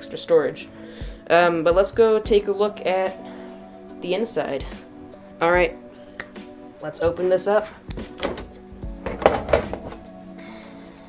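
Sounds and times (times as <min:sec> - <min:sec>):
metal lid scraping and clattering: 0:08.0 - 0:10.0.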